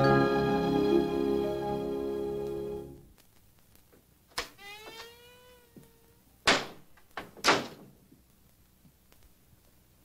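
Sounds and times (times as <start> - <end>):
door hinge squeaking: 4.4 - 5.8.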